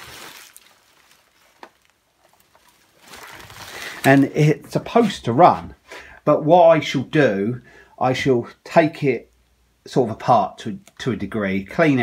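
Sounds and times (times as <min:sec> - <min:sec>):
bubble wrap rustling: 0:00.0 - 0:05.1.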